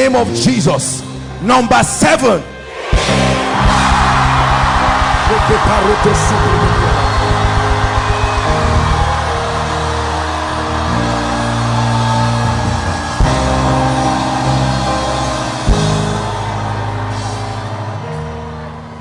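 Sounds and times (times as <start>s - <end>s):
congregation shouting: 2.5s - 19.0s
keyboard chords: 2.8s - 19.0s.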